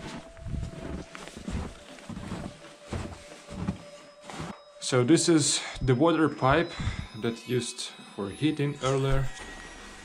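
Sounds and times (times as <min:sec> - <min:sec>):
footsteps in snow: 0:00.0 - 0:05.0.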